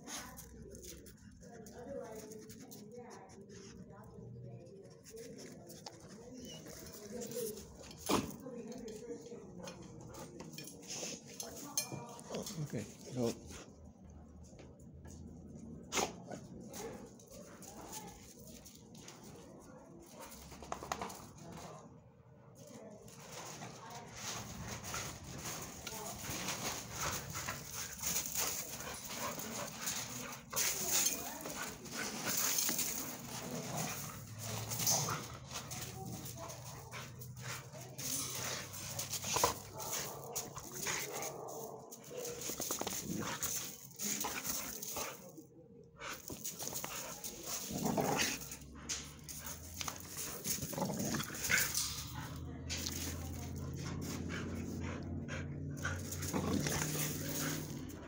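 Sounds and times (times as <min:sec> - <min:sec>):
dogs scuffing and clicking: 0:00.0 - 0:58.0.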